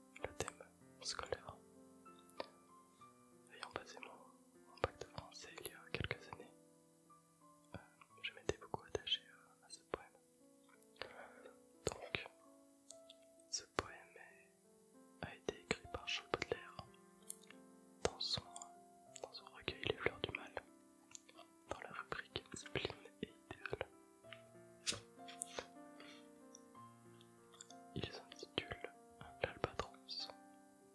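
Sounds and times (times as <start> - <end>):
soft background music: 0.0 - 30.9
close whispering: 0.2 - 1.6, 3.5 - 6.5, 7.7 - 10.2, 11.0 - 12.4, 13.5 - 14.6, 15.2 - 16.9, 18.0 - 18.6, 19.2 - 24.0, 24.8 - 26.3, 28.0 - 30.4.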